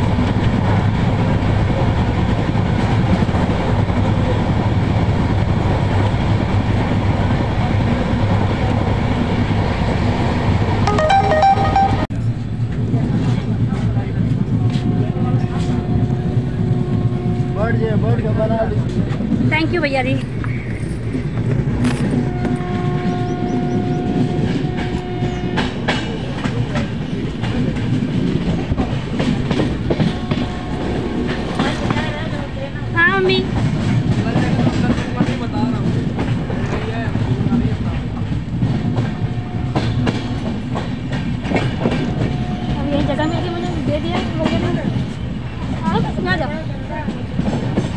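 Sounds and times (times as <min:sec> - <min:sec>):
train rumbling on track: 0:00.0 - 0:47.9.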